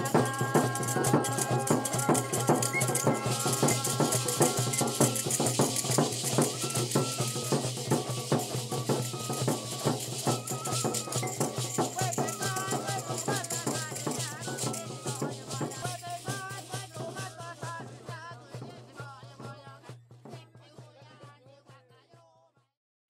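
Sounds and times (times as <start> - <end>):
percussion beat: 0.0 - 22.0.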